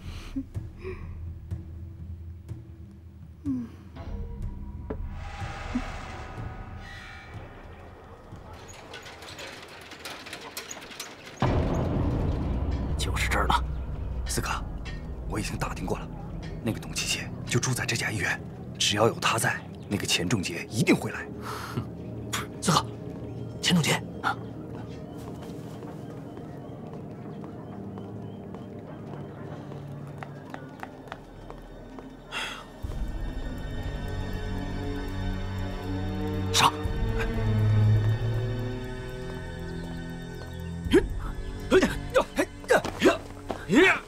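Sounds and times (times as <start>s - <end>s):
street background: 0.0s - 44.0s
small irregular clicks: 8.2s - 12.3s
hard-soled shoes on pavement: 24.8s - 32.2s.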